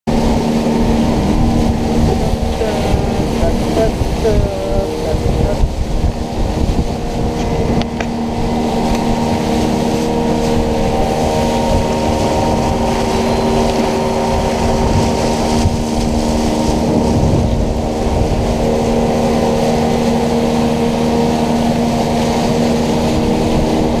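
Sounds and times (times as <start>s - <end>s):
outboard motor droning: 0.0s - 24.0s
water rushing along hull: 0.0s - 24.0s.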